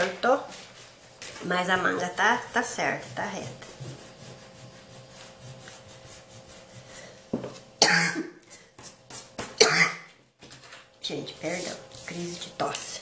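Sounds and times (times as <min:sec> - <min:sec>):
woman coughing: 0:07.8 - 0:08.4, 0:09.6 - 0:10.1.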